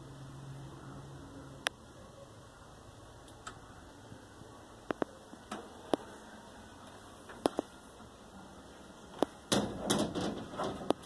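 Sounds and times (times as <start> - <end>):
rustling and knocking: 9.5 - 11.0.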